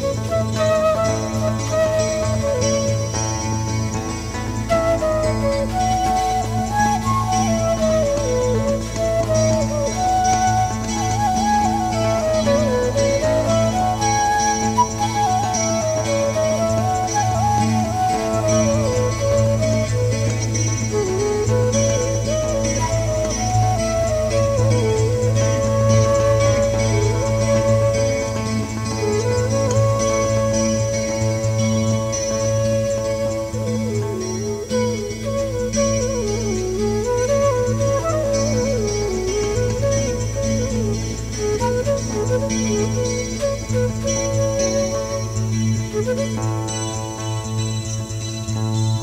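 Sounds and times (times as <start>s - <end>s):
acoustic guitar: 0.0s - 49.0s
wooden flute melody: 0.0s - 49.0s.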